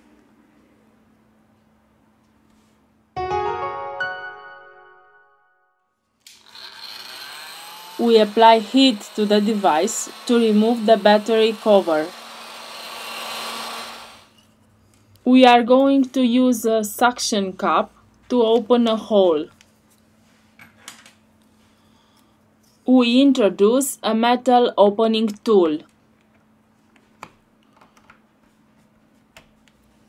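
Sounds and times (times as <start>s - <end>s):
heat gun rushing hiss: 6.6s - 14.3s.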